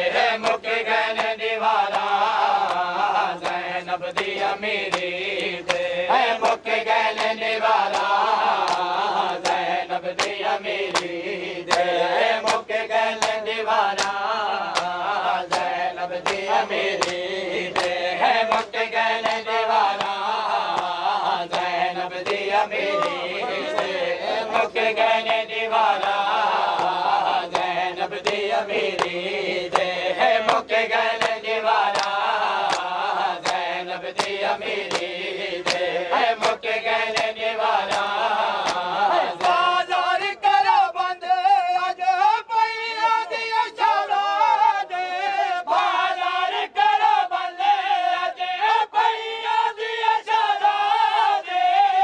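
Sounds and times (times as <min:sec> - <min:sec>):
men chanting in unison: 0:00.0 - 0:52.0.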